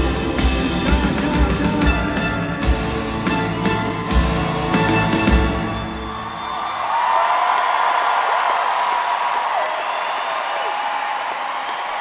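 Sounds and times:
concert music: 0.0 - 6.9
audience cheering and applauding: 0.0 - 12.0.

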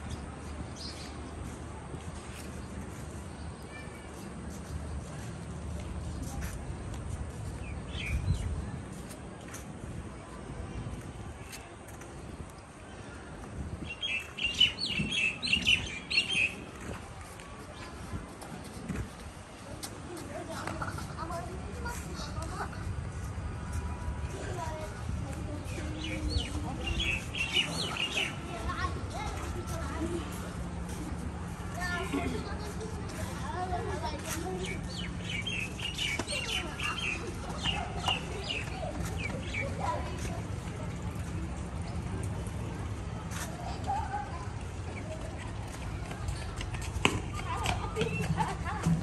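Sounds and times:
small birds chirping: 13.8 - 16.7, 25.6 - 28.9, 34.0 - 40.3.

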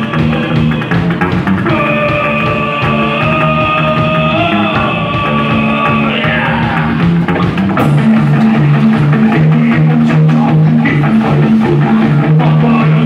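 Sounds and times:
double bass line: 0.0 - 13.0
drum kit: 0.0 - 13.0
electric guitar: 0.0 - 13.0.

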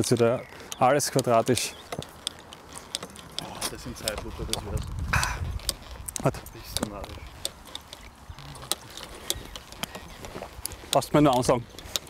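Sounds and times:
person speaking: 3.3 - 5.5, 6.1 - 7.4, 8.2 - 11.7.

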